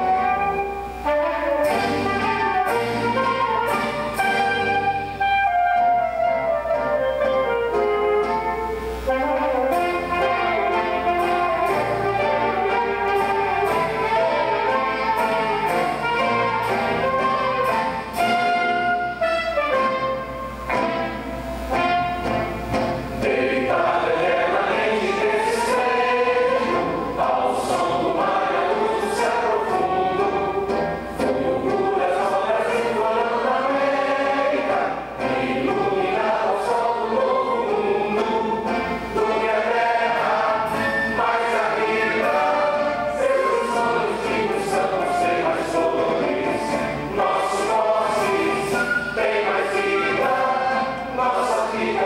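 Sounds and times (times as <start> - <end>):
choir with orchestra: 0.0 - 52.0.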